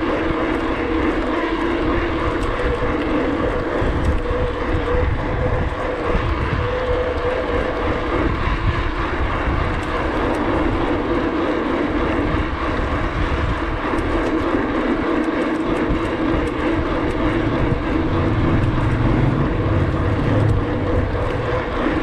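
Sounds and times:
bicycle tyres on road: 0.0s - 22.0s
wind on microphone: 0.0s - 22.0s.

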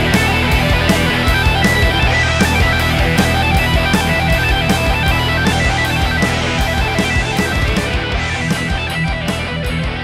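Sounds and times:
distorted electric guitars: 0.0s - 10.0s
drum beat with cymbals: 0.0s - 10.0s
hard rock song: 0.0s - 10.0s.

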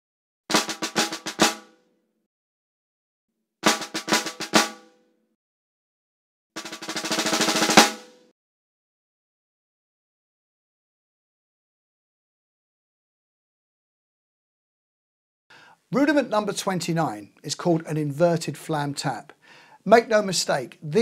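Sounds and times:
snare drum strokes and roll: 0.5s - 1.8s, 3.6s - 4.9s, 6.6s - 8.3s.

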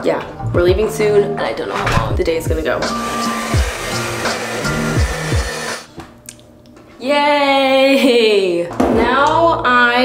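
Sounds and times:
hair dryer blowing: 2.8s - 5.9s.

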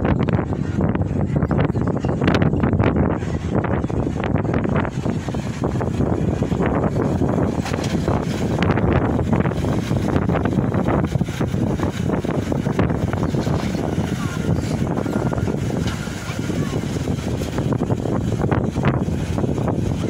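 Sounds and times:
wind blowing across microphone: 0.0s - 20.0s.

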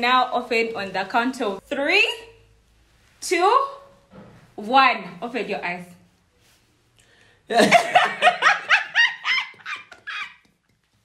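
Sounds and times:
man and woman laughing: 7.6s - 10.5s.

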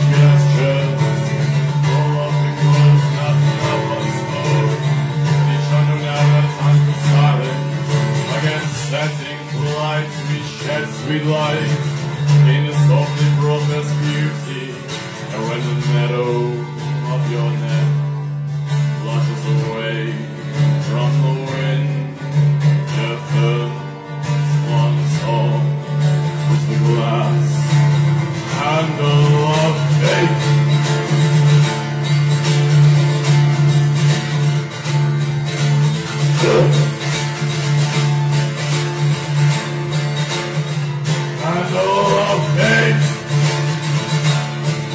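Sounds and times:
acoustic guitar playing: 0.0s - 44.9s.

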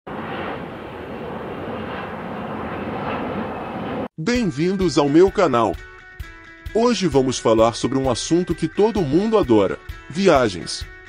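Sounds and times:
airplane engine drone: 0.1s - 4.2s.

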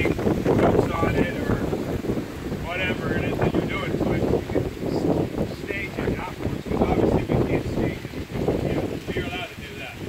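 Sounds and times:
people talking: 0.0s - 1.7s, 2.6s - 10.0s
wind buffeting microphone: 0.0s - 10.0s.

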